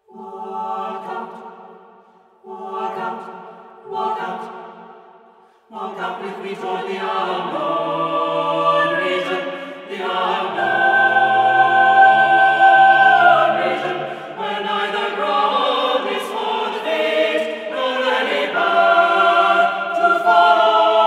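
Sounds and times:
unaccompanied choir singing: 0.0 - 21.0.

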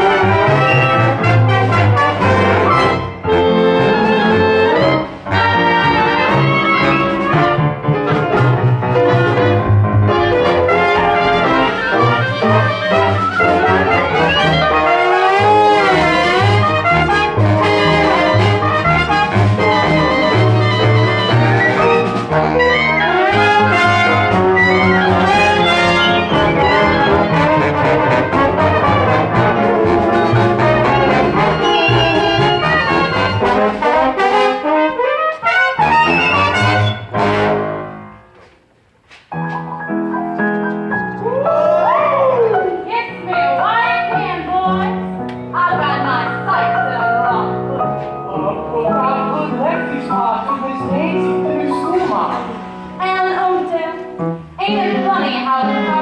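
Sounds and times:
pit orchestra instrumental music: 0.0 - 38.4, 42.6 - 56.0.

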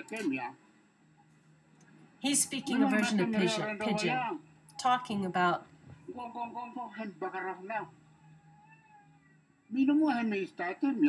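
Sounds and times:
man speaking: 0.0 - 0.5, 2.7 - 4.4, 6.1 - 7.9, 9.7 - 11.0.

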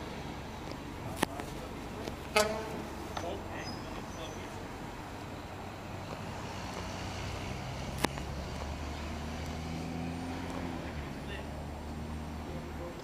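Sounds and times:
low engine hum: 0.0 - 13.0.

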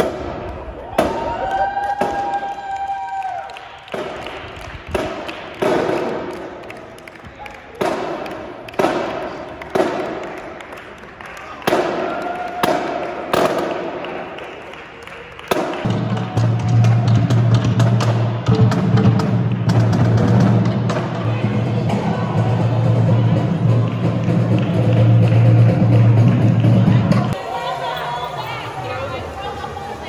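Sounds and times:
marching drums echoing: 3.9 - 6.6, 15.5 - 27.4.

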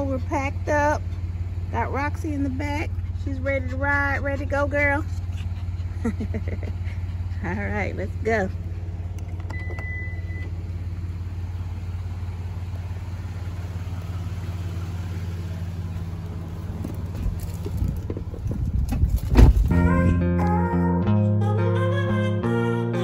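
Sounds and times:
car engine idling: 0.0 - 20.7
car door shutting: 9.2 - 10.6, 16.6 - 20.2
short beep: 9.5 - 10.5
acoustic guitar music: 19.7 - 23.0.

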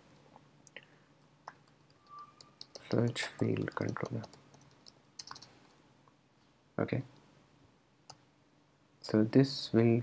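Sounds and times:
keyboard keystroke clicks: 2.4 - 5.5.

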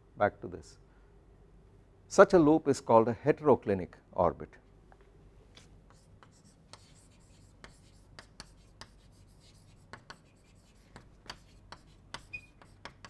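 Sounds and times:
chalk tapping and scratching on blackboard: 5.6 - 13.0.

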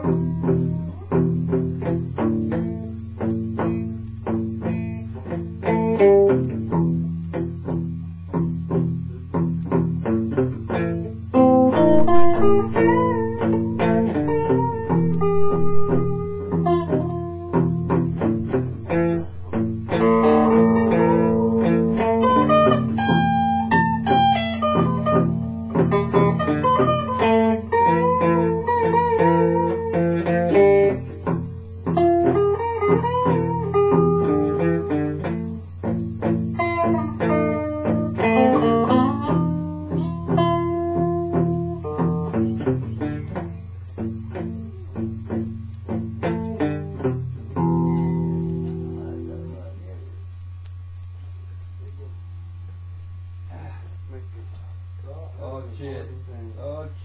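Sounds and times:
solo blues guitar: 0.0 - 55.2.

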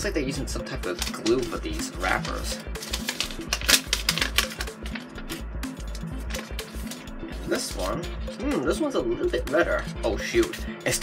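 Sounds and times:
background music with bass line: 0.0 - 11.0
wrapper crackling: 0.9 - 5.4.

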